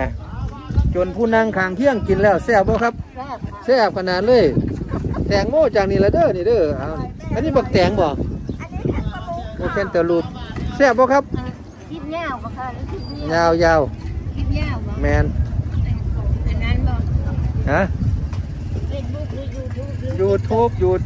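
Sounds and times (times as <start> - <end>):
steady low rumble: 13.8 - 21.0.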